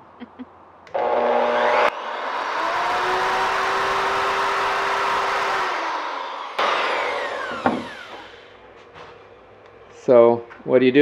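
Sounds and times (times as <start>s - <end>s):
router winding down whine: 0.9s - 8.8s
electric router cutting wood: 0.9s - 8.9s.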